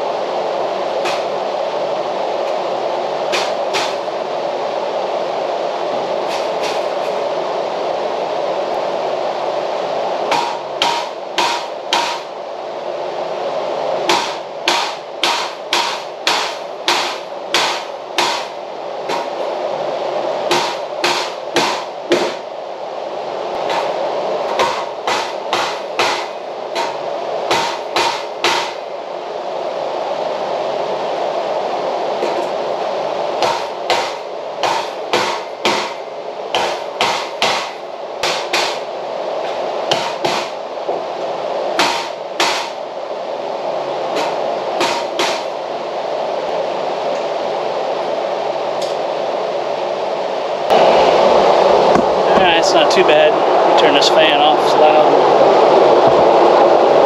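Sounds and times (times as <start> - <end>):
hammer striking wood: 10.3 - 12.2, 14.1 - 18.5, 20.5 - 22.4, 24.5 - 28.8, 33.4 - 36.0, 36.6 - 38.8, 39.9 - 40.5, 41.8 - 42.8, 44.2 - 45.5.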